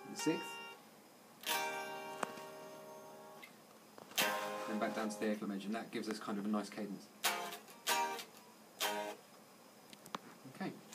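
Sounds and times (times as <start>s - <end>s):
electric guitar chord strums: 0.0s - 0.8s, 1.4s - 3.5s, 4.1s - 5.5s, 7.2s - 9.2s.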